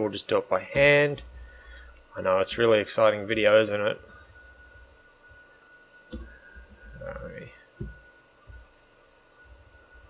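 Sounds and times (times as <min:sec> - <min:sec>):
faint steady high tone: 0:00.0 - 0:10.0
computer keyboard clicks: 0:06.1 - 0:06.8.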